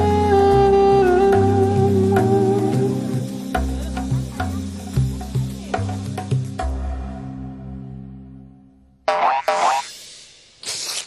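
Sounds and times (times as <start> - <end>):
cartoon sound effects: 9.1 - 9.9.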